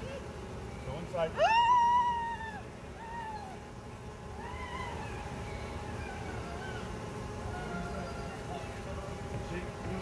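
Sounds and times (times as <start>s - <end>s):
high-pitched whining cries: 1.3s - 8.9s.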